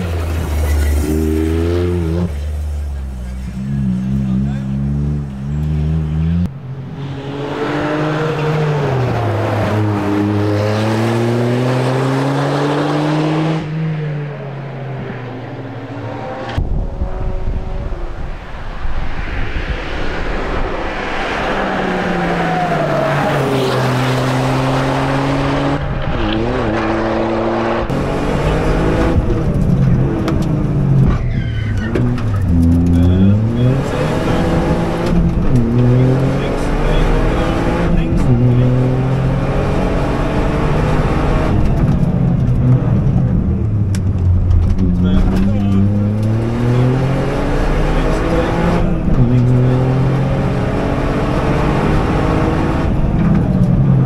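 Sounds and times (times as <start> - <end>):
rally car passing: 0.0 - 54.0
car engine revving inside cabin: 32.1 - 54.0.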